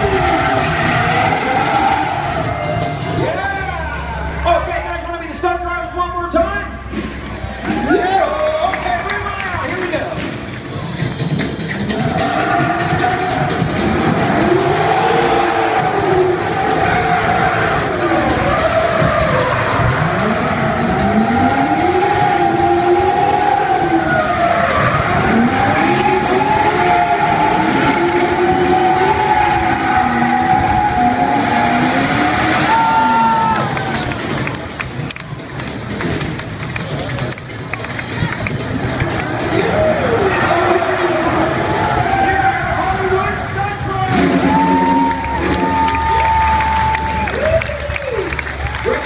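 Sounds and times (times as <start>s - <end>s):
car engines revving: 0.0s - 49.0s
music: 0.0s - 49.0s
tyres squealing: 10.6s - 34.4s.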